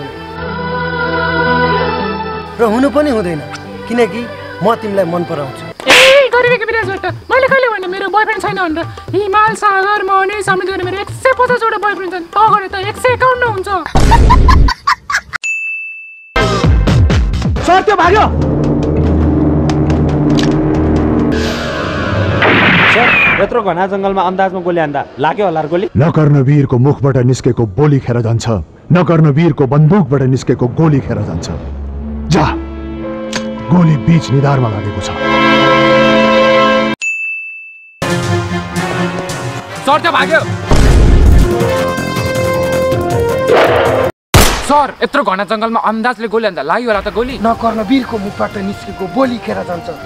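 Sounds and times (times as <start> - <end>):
high ringing ding: 15.4 - 16.4, 37.0 - 38.0
dramatic film music chord: 31.4 - 37.0
sharp click: 33.3 - 33.5.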